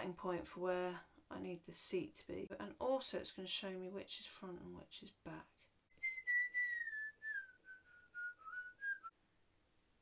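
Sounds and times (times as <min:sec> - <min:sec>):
woman whistling: 0:06.0 - 0:09.1.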